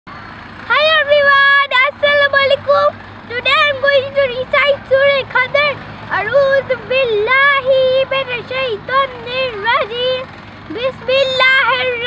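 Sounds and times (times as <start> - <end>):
boy calling out loudly: 0.7 - 12.0.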